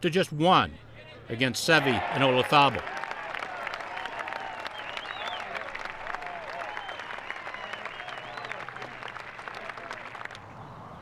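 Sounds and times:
crowd clapping: 1.9 - 10.4.

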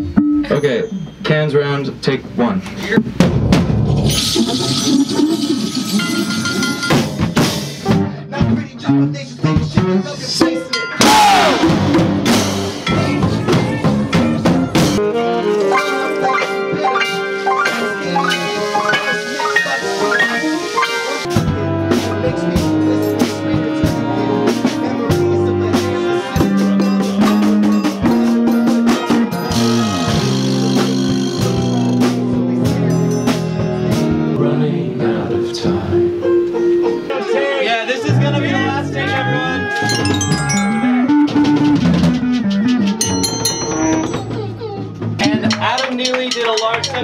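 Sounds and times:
live band playing: 2.9 - 34.4, 39.2 - 47.0
drum hits: 3.0 - 4.6, 39.9 - 45.2.

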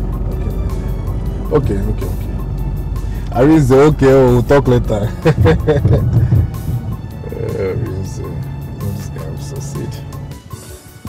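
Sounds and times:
film music with ticking beat: 0.0 - 11.0
man laughing: 5.0 - 6.7.

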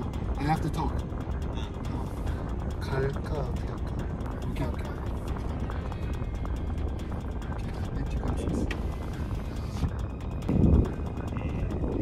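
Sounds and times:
background music: 0.0 - 12.0
car cabin rumble: 0.0 - 12.0.

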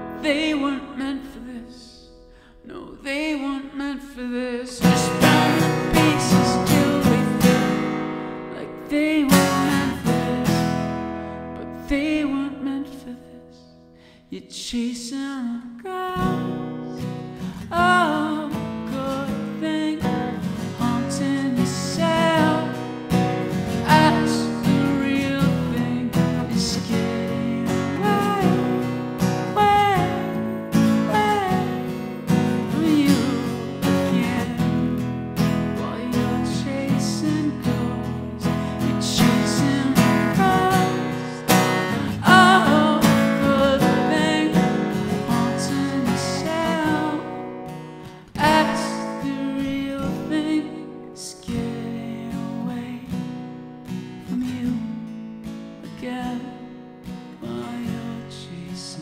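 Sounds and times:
acoustic guitar strumming: 0.0 - 14.5, 15.9 - 59.0
man singing: 0.0 - 53.4, 54.2 - 55.1, 55.8 - 59.0.

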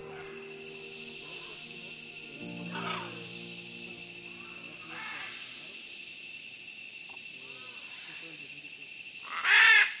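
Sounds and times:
faint bird calls: 0.0 - 5.8
steady high hiss: 0.0 - 10.0
loud harsh bird call: 2.3 - 3.6, 9.2 - 10.0.

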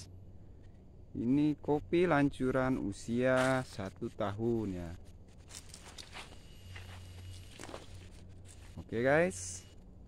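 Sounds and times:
low steady hum: 0.0 - 10.0
footsteps on soil: 3.2 - 4.1, 4.8 - 9.0.

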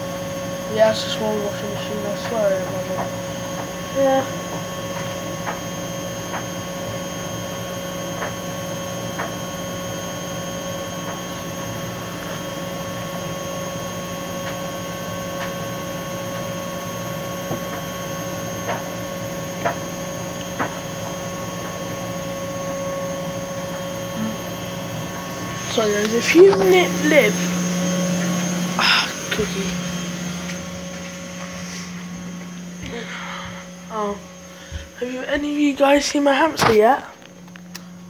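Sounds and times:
washing machine humming: 0.0 - 38.0.

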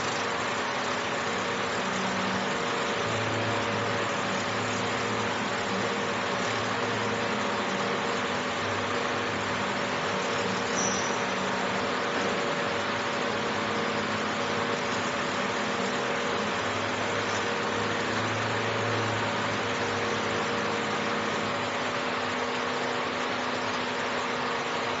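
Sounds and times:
laser engraving hiss: 0.0 - 21.7
machine hum: 0.0 - 25.0.

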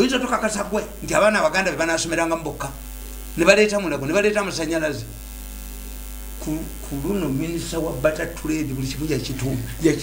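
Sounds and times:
man speaking: 0.0 - 2.8, 3.4 - 5.2, 6.4 - 10.0
electrical mains hum: 0.0 - 10.0.

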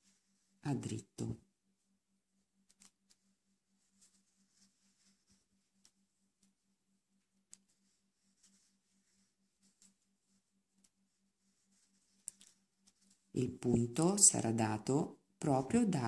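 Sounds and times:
knitting needles clicking: 2.6 - 3.0.

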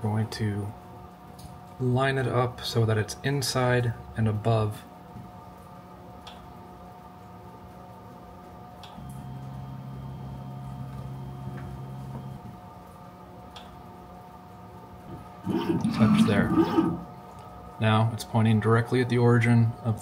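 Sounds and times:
machine humming: 8.8 - 12.8, 15.0 - 17.8
motor tone: 9.0 - 12.5, 15.4 - 17.2.

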